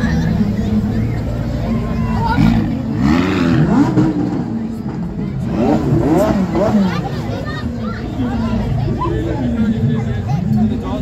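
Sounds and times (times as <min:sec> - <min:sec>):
sports car engine running: 0:00.0 - 0:09.1
crowd voices: 0:00.0 - 0:11.0.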